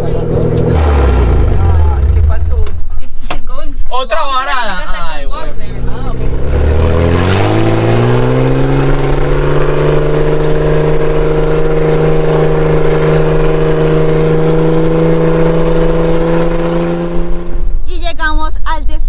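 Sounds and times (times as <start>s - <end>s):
vehicle engine driving: 0.0s - 3.2s, 5.1s - 18.2s
wind: 0.0s - 19.0s.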